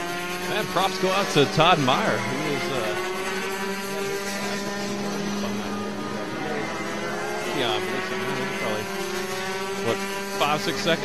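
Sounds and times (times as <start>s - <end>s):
kart engines droning: 0.0s - 11.0s.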